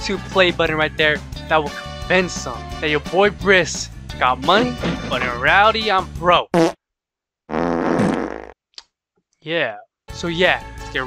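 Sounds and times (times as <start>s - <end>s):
comic fart sound effect: 6.5s - 6.8s, 7.5s - 8.6s.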